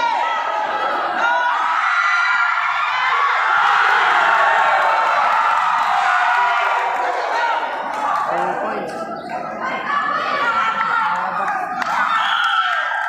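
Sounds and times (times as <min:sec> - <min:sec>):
crowd cheering and screaming: 0:00.0 - 0:13.0.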